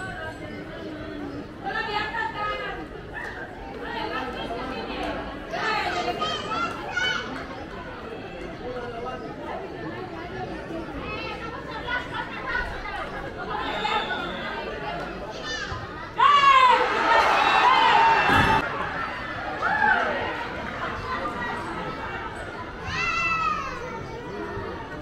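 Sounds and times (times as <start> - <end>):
people talking at once: 0.0 - 25.0
people calling out: 12.4 - 24.1.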